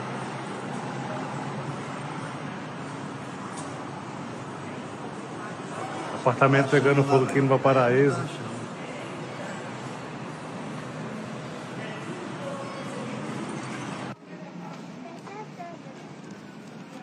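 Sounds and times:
bus passing close by: 0:00.0 - 0:14.2
road traffic noise: 0:00.0 - 0:17.0
faint voices: 0:03.9 - 0:17.0.

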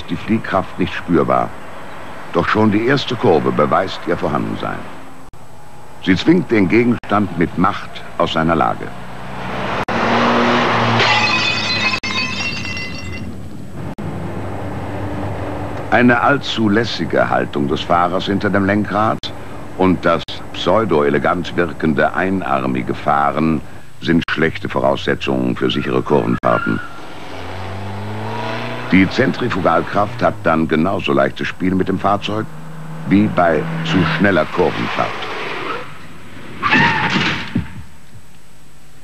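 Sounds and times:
car engine running: 0:27.0 - 0:35.0.

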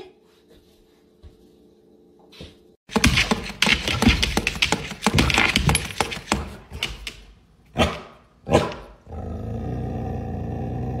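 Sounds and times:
dog barking: 0:07.8 - 0:09.0
dog growling: 0:08.5 - 0:11.0.

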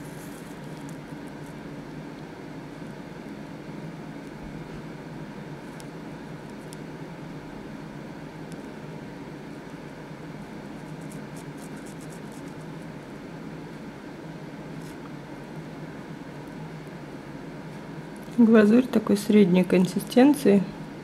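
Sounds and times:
low room hum: 0:00.0 - 0:21.0.

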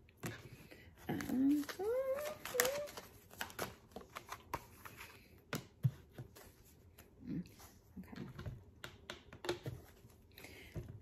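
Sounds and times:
cards tapping and clicking: 0:01.2 - 0:06.5.

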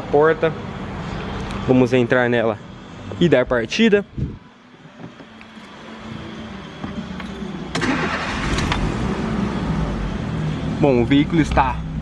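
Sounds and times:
van engine starting and idling: 0:04.8 - 0:12.0.

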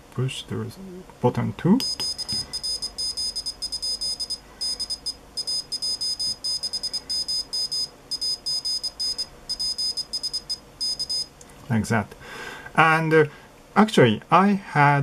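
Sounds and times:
morse code beeps: 0:01.8 - 0:11.3.

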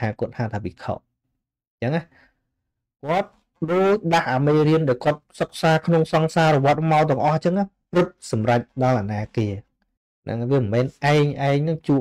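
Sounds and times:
man speaking a syllable: 0:01.8 - 0:02.1, 0:03.0 - 0:09.7, 0:10.3 - 0:12.0
faint breath: 0:02.1 - 0:02.6.

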